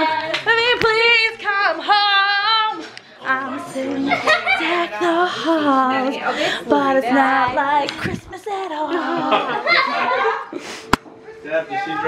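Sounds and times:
high voices singing: 0.0s - 9.9s.

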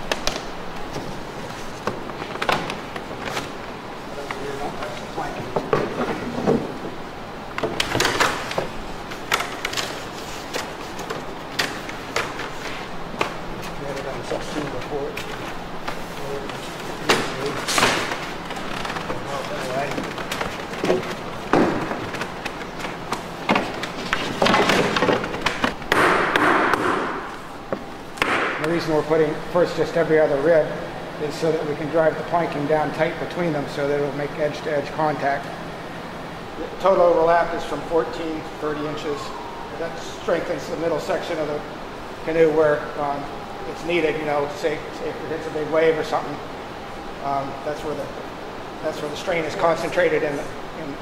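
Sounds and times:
people talking: 4.1s - 5.8s, 13.8s - 15.2s, 16.2s - 17.8s, 19.1s - 20.1s, 28.6s - 35.5s, 36.6s - 46.4s, 47.2s - 48.2s, 48.8s - 51.0s
sharp wooden knocks: 20.0s - 22.9s, 23.5s - 27.3s, 28.2s - 28.6s.

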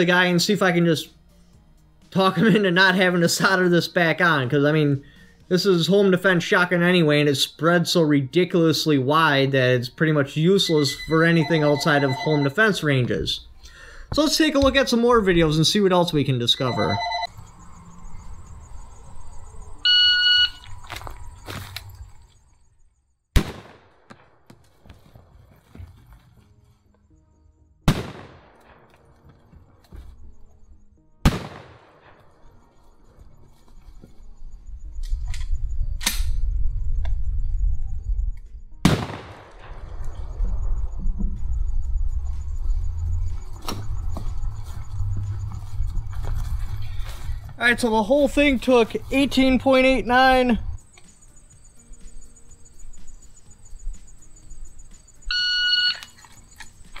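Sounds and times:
shotgun shots: 23.4s - 24.6s, 27.9s - 29.1s, 31.2s - 32.3s, 38.8s - 40.0s
low rumble: 34.7s - 47.6s.

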